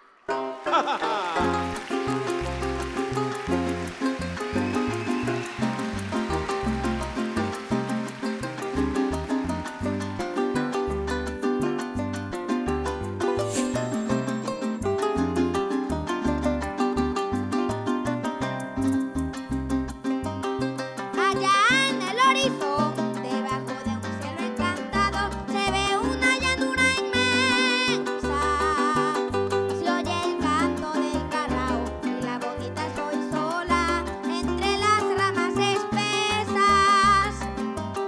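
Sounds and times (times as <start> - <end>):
harp fast plucked runs: 0.3 - 38.0
maracas: 0.3 - 38.0
strummed small guitar: 0.3 - 38.0
bouncing bass line: 1.4 - 20.6.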